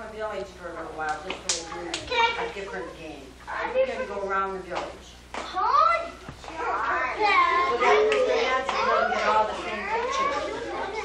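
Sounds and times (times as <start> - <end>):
children talking and calling out: 1.7 - 4.3, 5.4 - 11.0.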